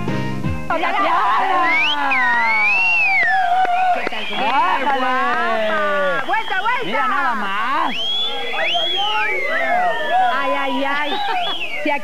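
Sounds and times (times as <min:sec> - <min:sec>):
people calling out in high cries: 0:06.8 - 0:12.0.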